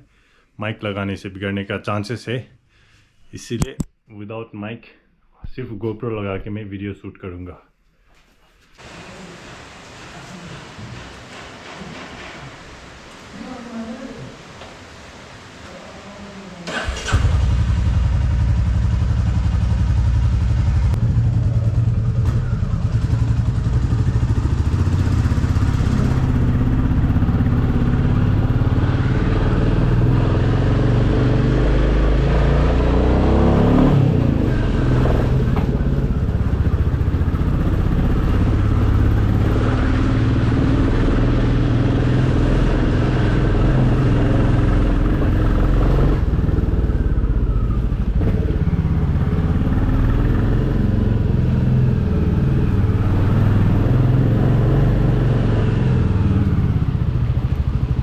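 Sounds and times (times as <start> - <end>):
motorcycle engine running: 16.8 - 58.0.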